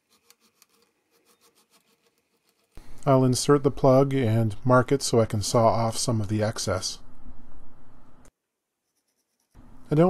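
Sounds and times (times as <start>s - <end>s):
sandpaper scratching wood: 0.0s - 2.8s.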